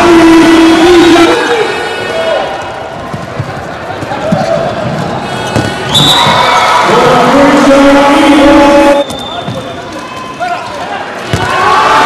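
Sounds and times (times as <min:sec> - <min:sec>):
handball thudding on court: 0:05.5 - 0:06.4, 0:11.3 - 0:11.6
crowd chanting: 0:06.6 - 0:09.0
shoes squeaking: 0:09.0 - 0:11.0.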